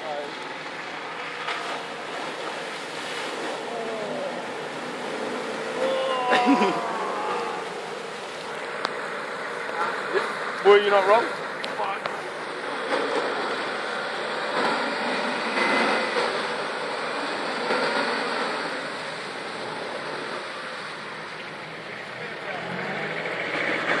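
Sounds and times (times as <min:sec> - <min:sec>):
tyres splashing through mud: 0:00.0 - 0:24.0
truck engine running: 0:00.4 - 0:24.0.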